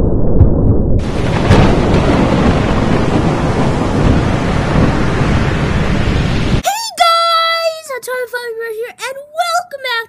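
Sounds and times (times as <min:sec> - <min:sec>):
rumbling thunder: 0:00.0 - 0:06.6
sharp thunder crack: 0:00.0 - 0:06.6
heavy rain: 0:01.0 - 0:06.6.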